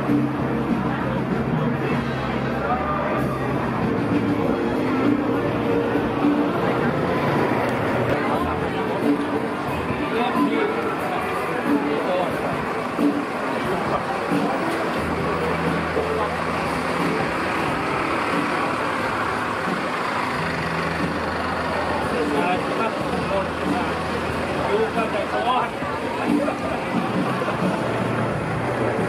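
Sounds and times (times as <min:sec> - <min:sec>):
people talking: 0:00.0 - 0:29.0
vehicle engine idling: 0:00.0 - 0:29.0.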